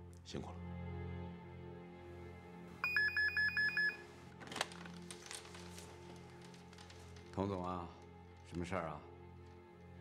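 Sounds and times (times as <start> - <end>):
quiet background music: 0.0 - 10.0
desk telephone ringing electronic trill: 2.8 - 4.0.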